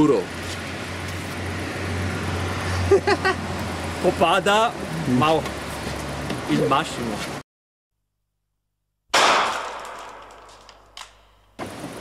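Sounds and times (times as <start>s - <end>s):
loud bang: 9.1s - 11.0s.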